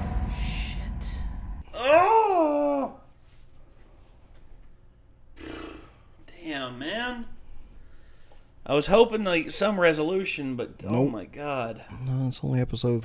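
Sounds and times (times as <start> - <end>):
low rumble: 0.0 - 1.7
man groaning in frustration: 1.6 - 3.0.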